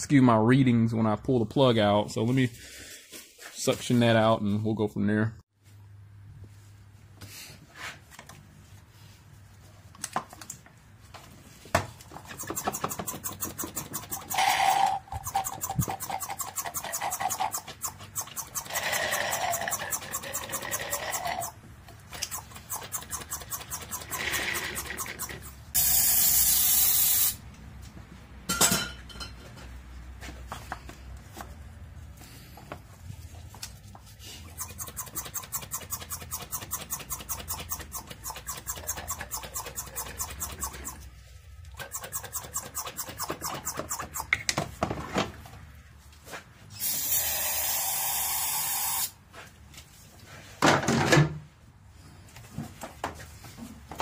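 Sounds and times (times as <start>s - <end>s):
bursts of hiss: 25.8s - 27.4s.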